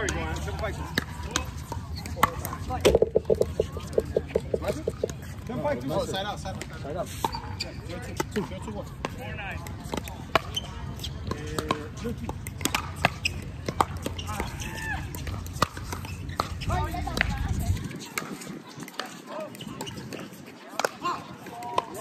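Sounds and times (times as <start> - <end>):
paddles hitting plastic ball: 2.9 - 5.1
voices talking: 2.9 - 5.5.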